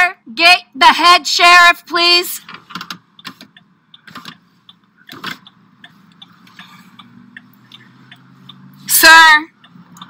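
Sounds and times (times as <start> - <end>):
sharp clicks in car cabin: 2.4 - 8.6
faint ticks: 3.5 - 8.8.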